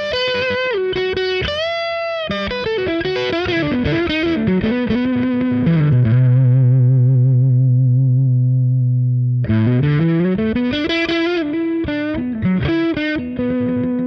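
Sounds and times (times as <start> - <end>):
overdriven electric guitar: 0.0 - 14.0.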